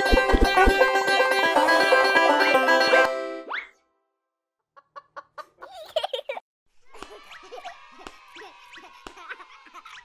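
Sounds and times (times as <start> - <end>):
banjo music: 0.0 - 3.5.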